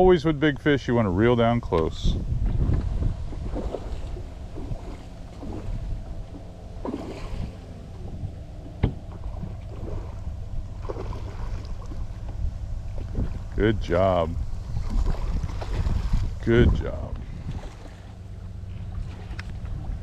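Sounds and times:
wind rumbling on microphone: 0:00.0 - 0:20.0
water against boat hull: 0:01.5 - 0:20.0.

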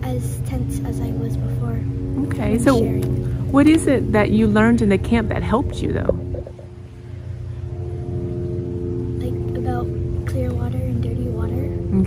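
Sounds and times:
low motor rumble: 0:00.0 - 0:12.0
girl speaking softly: 0:02.6 - 0:03.1, 0:09.2 - 0:12.0.

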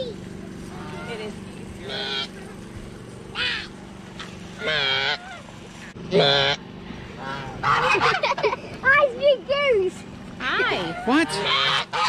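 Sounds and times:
geese honking: 0:00.6 - 0:02.4, 0:03.4 - 0:08.6, 0:10.4 - 0:12.0.

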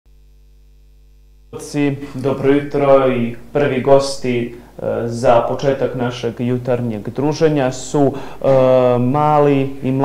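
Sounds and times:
faint mains hum: 0:00.1 - 0:10.0
man speaking: 0:01.6 - 0:10.0.

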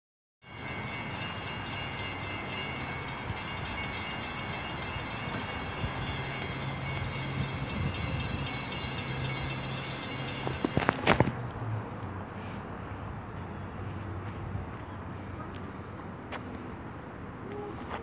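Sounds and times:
distant diesel train rumble: 0:00.4 - 0:17.9.

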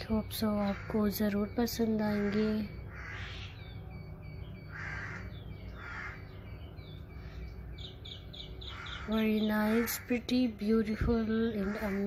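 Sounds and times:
steady low hum: 0:00.0 - 0:12.0
hoarse caw-like bird calls: 0:00.6 - 0:01.2, 0:02.0 - 0:04.0, 0:04.6 - 0:10.3, 0:11.5 - 0:12.0.

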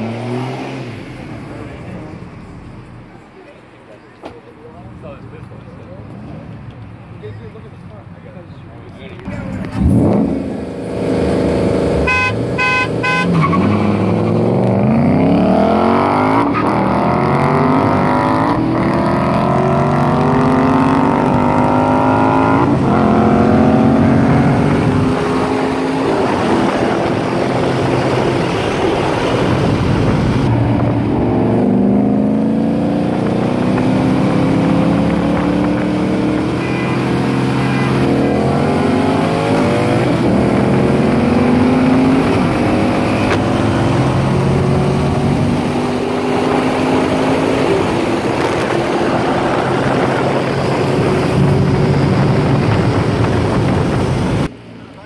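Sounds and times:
car engines accelerating: 0:00.0 - 0:55.0.

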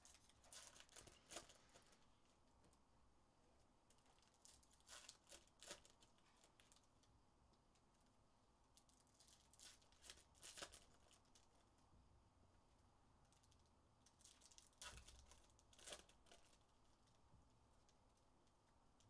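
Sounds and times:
foil wrappers crinkling and tearing: 0:00.0 - 0:02.4, 0:03.9 - 0:06.9, 0:08.8 - 0:11.6, 0:13.3 - 0:17.2.

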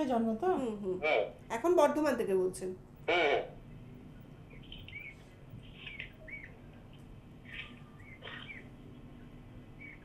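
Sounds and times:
low steady hum: 0:00.0 - 0:10.0
small bird chirping: 0:04.4 - 0:09.0, 0:09.7 - 0:10.0.

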